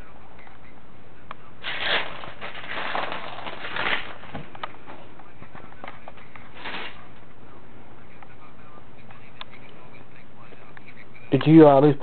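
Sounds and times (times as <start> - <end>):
rustling and crackling: 1.6 - 7.4.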